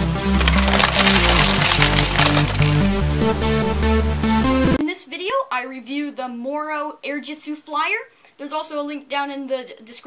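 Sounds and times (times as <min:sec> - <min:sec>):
plastic bricks tumbling and clattering: 0:00.3 - 0:03.1.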